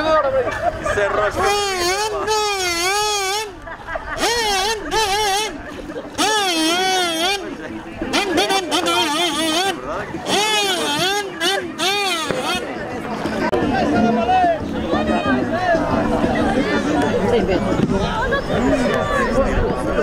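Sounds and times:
faint crowd chatter: 0:00.0 - 0:20.0.

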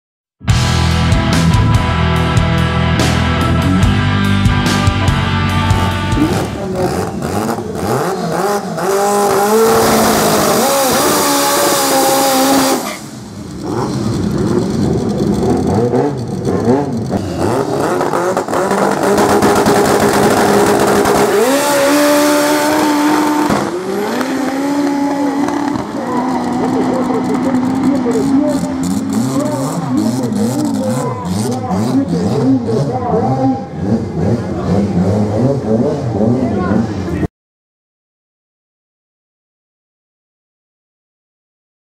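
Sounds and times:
car engine revving: 0:00.5 - 0:37.3
car accelerating hard: 0:05.6 - 0:37.3.

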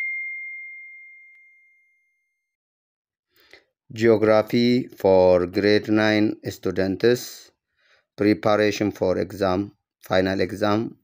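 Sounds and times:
notification bell ding: 0:00.0 - 0:02.1.

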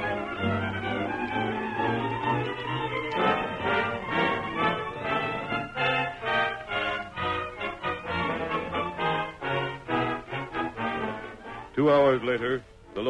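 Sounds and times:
orchestral music: 0:00.0 - 0:13.0.

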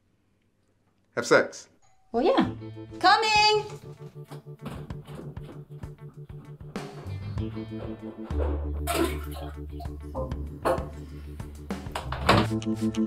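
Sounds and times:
plucked guitar: 0:04.3 - 0:11.1
bass line: 0:05.6 - 0:13.0.

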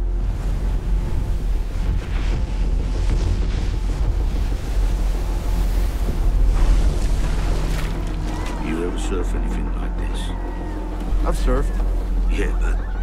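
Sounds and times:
ocean waves breaking: 0:00.0 - 0:13.0.

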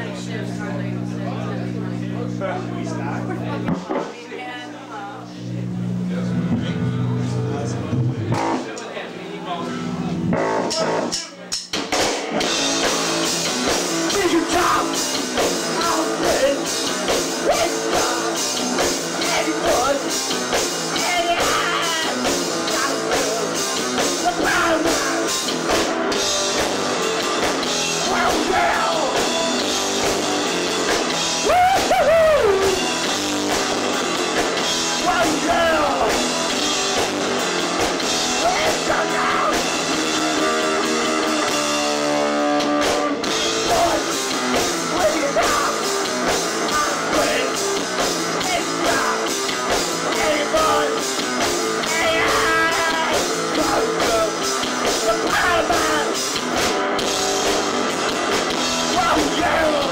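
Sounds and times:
drum kit: 0:03.0 - 0:04.2, 0:05.8 - 0:08.9, 0:09.9 - 0:59.9
electric guitars: 0:05.2 - 0:11.2, 0:11.8 - 0:59.9
person singing: 0:20.9 - 0:25.5, 0:28.0 - 0:29.2, 0:38.4 - 0:39.8, 0:43.1 - 0:47.7, 0:48.4 - 0:56.3, 0:58.8 - 0:59.9.

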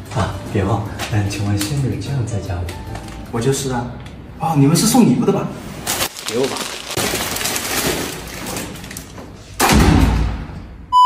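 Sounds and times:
paper bouquet rustling: 0:05.7 - 0:09.5
heavy door slamming: 0:09.6 - 0:10.6.

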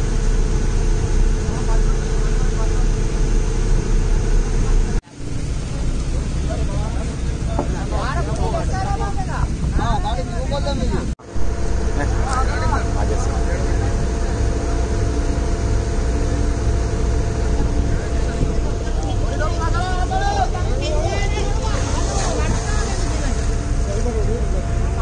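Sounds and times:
boat engine droning: 0:00.0 - 0:25.0
men calling out: 0:18.8 - 0:23.6.

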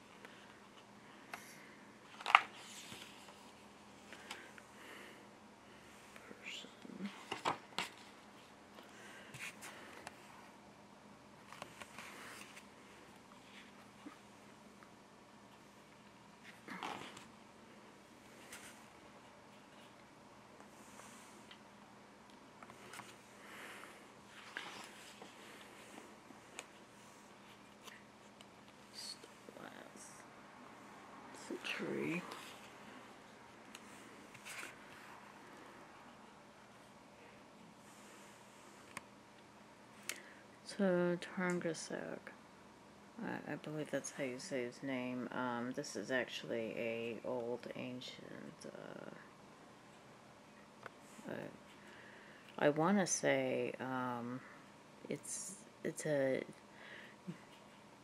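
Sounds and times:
soft hiss: 0:00.0 - 0:10.7
book pages rustling: 0:02.1 - 0:04.4, 0:07.1 - 0:10.3, 0:22.6 - 0:23.2, 0:24.3 - 0:29.3, 0:33.8 - 0:35.3.

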